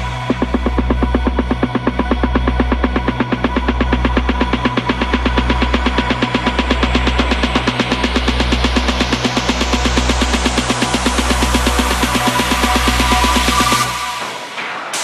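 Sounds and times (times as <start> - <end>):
sustained synth bass: 0.0 - 14.7
fast pulsing synth pattern: 0.0 - 15.0
rising synth sweep: 0.0 - 15.0.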